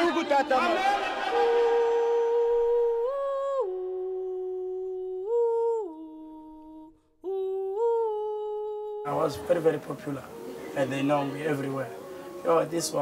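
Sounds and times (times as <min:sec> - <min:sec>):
person humming a melody: 0:01.4 - 0:09.5.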